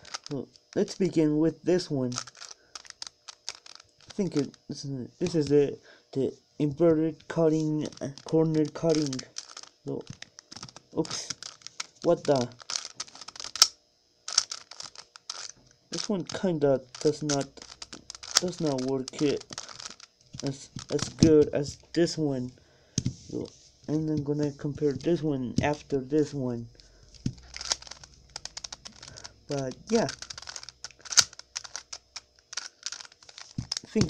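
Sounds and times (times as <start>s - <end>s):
puzzle cube layers clicking: 7.8s - 13.7s, 14.3s - 21.7s, 27.2s - 34.0s.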